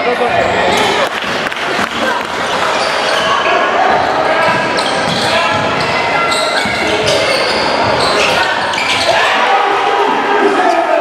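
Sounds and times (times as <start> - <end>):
echoing voices in a gym: 0.0 - 11.0.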